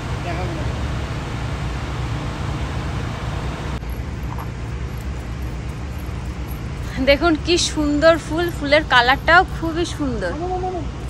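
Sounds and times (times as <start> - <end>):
low outdoor rumble: 0.0 - 11.0.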